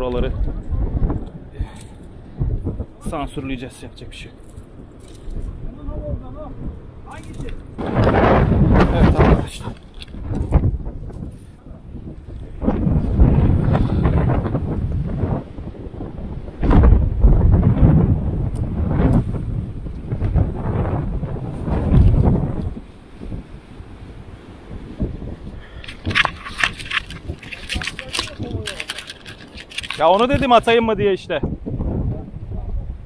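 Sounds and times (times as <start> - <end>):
wind buffeting microphone: 0.0 - 33.0
surf breaking on rocks: 7.7 - 10.8
sharp clicks and rattles: 8.8 - 10.6, 25.8 - 30.7.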